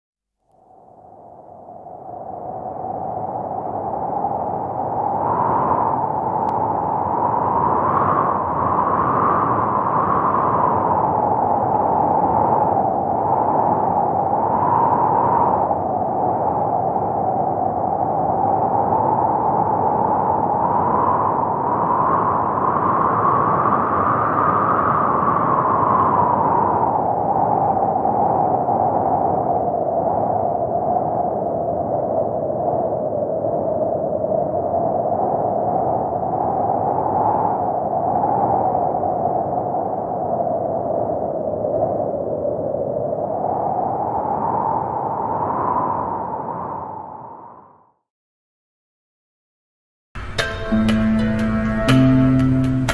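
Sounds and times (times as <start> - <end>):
rushing wind-like noise: 0.6 - 48.0, 50.2 - 52.9.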